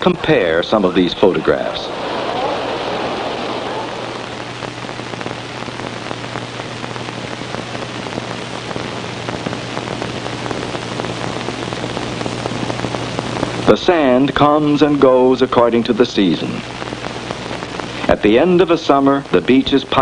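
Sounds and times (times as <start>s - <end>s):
film soundtrack hiss and crackle: 0.0s - 20.0s.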